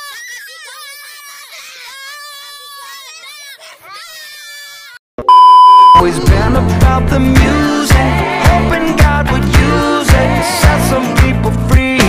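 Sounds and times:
child wailing: 0:00.0 - 0:05.0.

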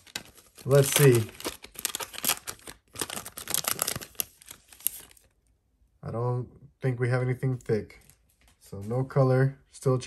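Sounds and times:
foil wrapper crinkling and tearing: 0:00.0 - 0:05.3.

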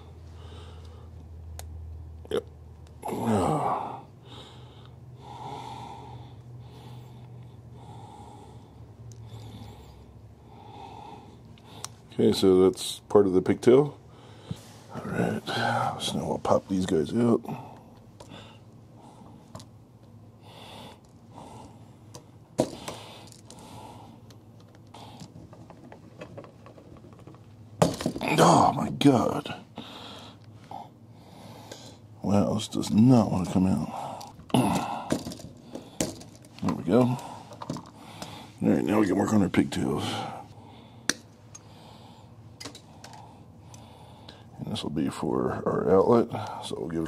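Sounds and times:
hard breathing: 0:00.0 - 0:01.2, 0:03.2 - 0:12.1, 0:14.0 - 0:16.1, 0:17.4 - 0:19.6, 0:20.3 - 0:25.6, 0:29.6 - 0:32.1, 0:33.8 - 0:38.7, 0:39.9 - 0:44.6.

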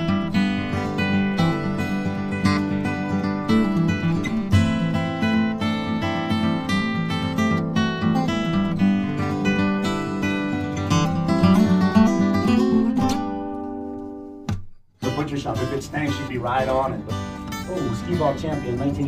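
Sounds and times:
acoustic guitar music: 0:00.0 - 0:19.0.

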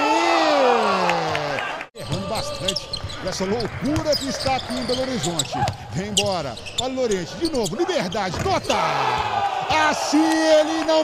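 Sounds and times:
arena crowd noise: 0:00.0 - 0:02.8, 0:07.7 - 0:11.0
sports commentator exclaiming: 0:07.6 - 0:11.0.

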